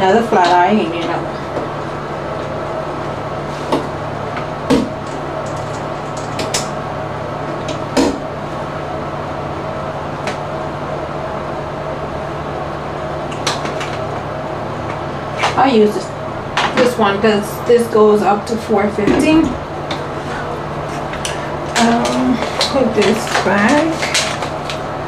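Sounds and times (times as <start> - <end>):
low hum: 0.0 - 25.0.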